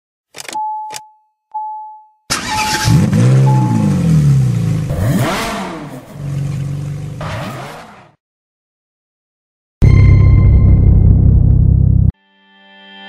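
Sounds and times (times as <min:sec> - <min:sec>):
short high beeps: 0:00.6 - 0:04.0
car engine revving: 0:02.3 - 0:08.2.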